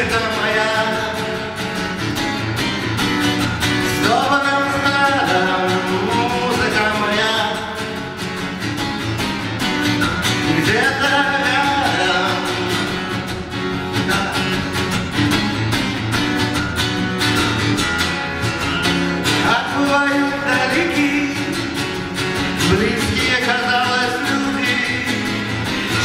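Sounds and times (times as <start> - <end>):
man singing: 0.0 - 2.2, 3.7 - 8.4, 10.2 - 15.3, 18.6 - 26.0
strummed acoustic guitar: 0.0 - 26.0.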